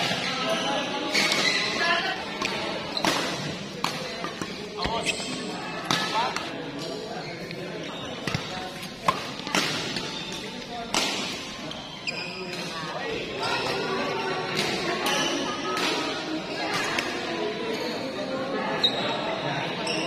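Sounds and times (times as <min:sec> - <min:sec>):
voices chattering: 0:00.0 - 0:20.0
rackets hitting shuttlecock: 0:02.4 - 0:06.9, 0:08.2 - 0:11.5.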